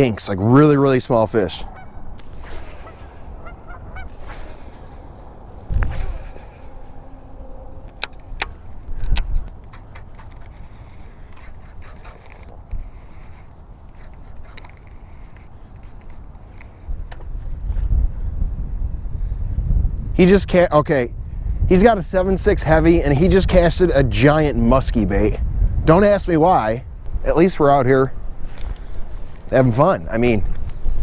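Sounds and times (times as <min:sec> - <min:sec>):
wind rumble on microphone: 0:00.0 - 0:31.0
geese honking: 0:01.5 - 0:08.8.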